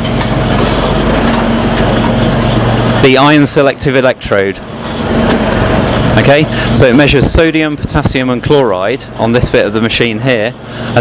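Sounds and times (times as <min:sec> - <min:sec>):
low even hum: 0:00.0 - 0:11.0
machine whir and hiss: 0:00.0 - 0:11.0.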